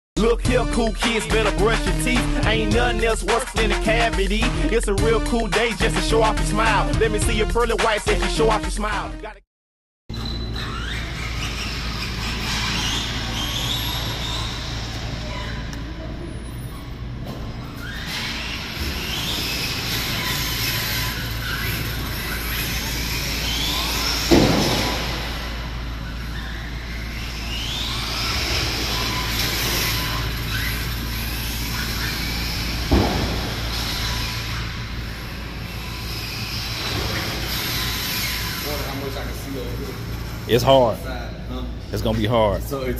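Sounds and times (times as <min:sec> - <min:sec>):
rc car motor whining: 0:10.2 - 0:16.5, 0:17.6 - 0:41.1.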